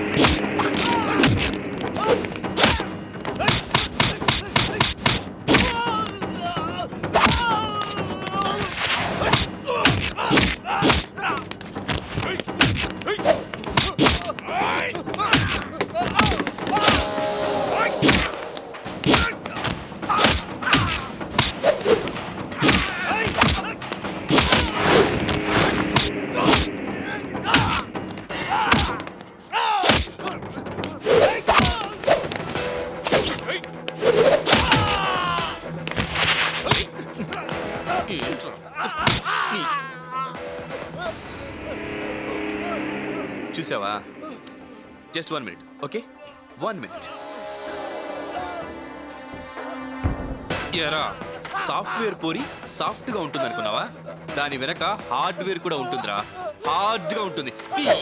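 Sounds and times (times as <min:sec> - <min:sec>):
punch and kick impacts: 0:09.2 - 0:11.1, 0:29.8 - 0:30.2.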